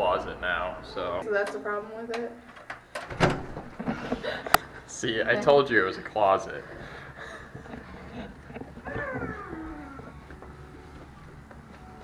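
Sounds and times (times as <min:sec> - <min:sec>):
person making falling ooh sound: 0:08.8 - 0:10.2.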